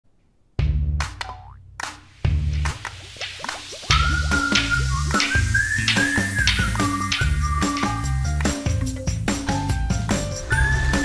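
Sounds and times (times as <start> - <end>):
animated intro music: 1.8 - 11.0.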